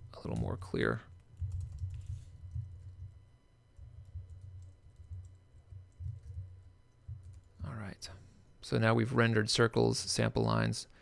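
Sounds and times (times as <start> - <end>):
typing on computer keyboard: 1.3 - 3.2, 3.8 - 7.5.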